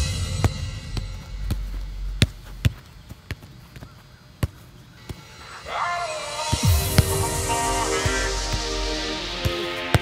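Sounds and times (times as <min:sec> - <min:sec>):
foot thudding on soccer ball: 0:00.0 - 0:05.3.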